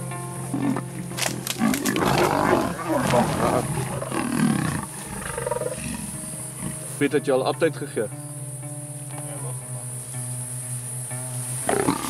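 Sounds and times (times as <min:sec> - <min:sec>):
big cats snarling and growling: 0:00.4 - 0:07.0, 0:11.6 - 0:12.0.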